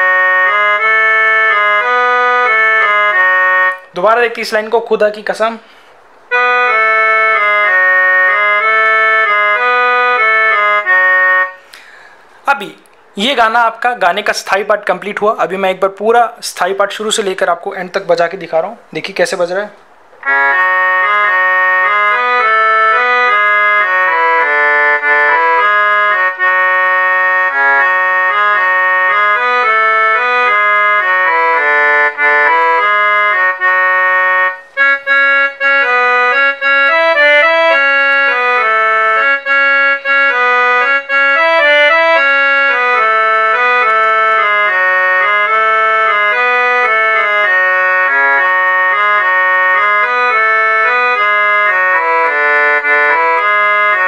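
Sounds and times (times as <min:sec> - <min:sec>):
keyboard organ melody: 0:00.0 - 0:18.1, 0:19.8 - 0:54.0.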